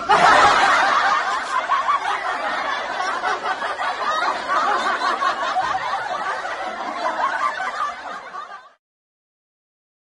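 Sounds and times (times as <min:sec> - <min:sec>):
women laughing: 0:00.0 - 0:08.8.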